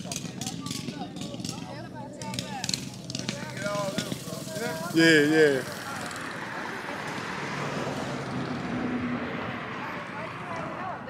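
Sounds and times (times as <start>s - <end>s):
faint voices: 0.0s - 11.0s
traffic noise: 0.0s - 11.0s.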